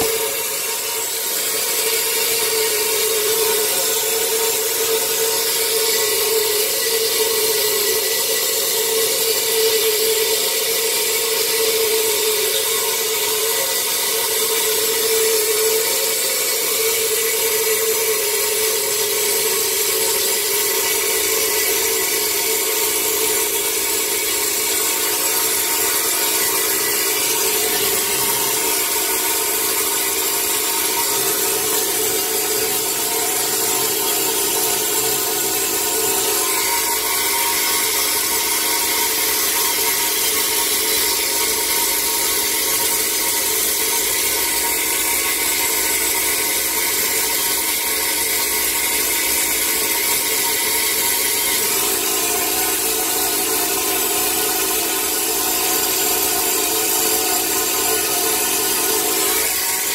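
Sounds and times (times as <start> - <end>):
vapor blaster hissing: 0.0 - 7.3.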